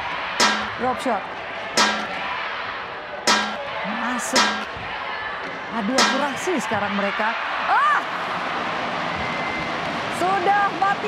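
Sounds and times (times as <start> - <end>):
rackets striking shuttlecock: 0.4 - 0.8, 1.8 - 2.2, 3.3 - 3.7, 4.4 - 4.7, 6.0 - 6.4.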